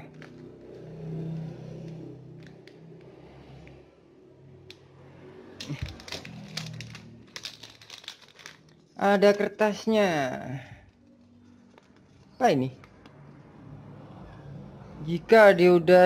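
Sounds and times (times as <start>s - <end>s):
scissors snipping plastic bag: 5.6s - 8.6s
plastic crinkling: 5.6s - 9.5s.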